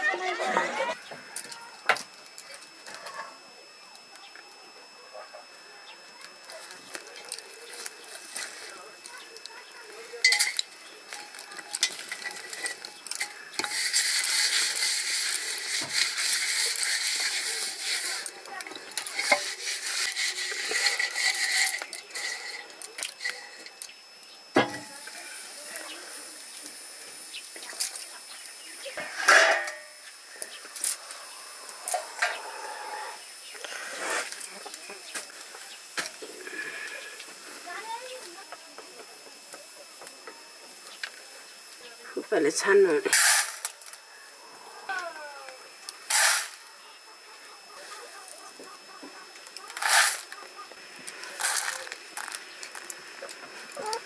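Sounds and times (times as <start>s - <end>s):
steady hiss: 3.8s - 54.0s
pots and dishes clinking: 10.2s - 10.7s, 19.0s - 23.7s, 24.6s - 24.9s, 29.0s - 30.0s.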